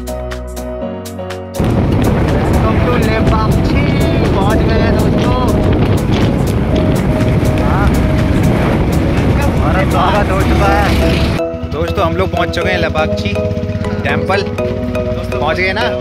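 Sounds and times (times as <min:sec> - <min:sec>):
background music: 0:00.0 - 0:16.0
wind buffeting microphone: 0:01.6 - 0:11.4
motorcycle road noise: 0:01.6 - 0:16.0.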